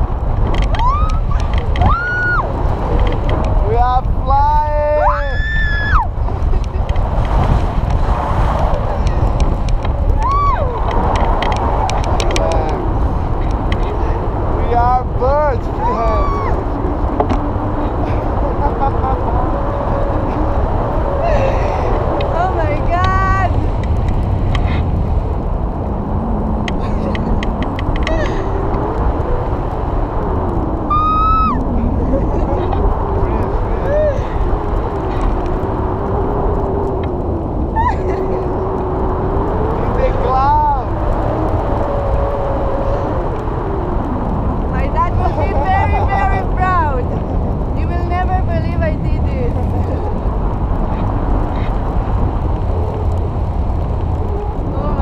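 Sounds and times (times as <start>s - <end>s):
wind buffeting microphone: 0.0s - 55.0s
voices: 8.7s - 23.6s, 30.9s - 35.3s, 39.7s - 43.6s, 44.6s - 50.5s, 53.8s - 55.0s.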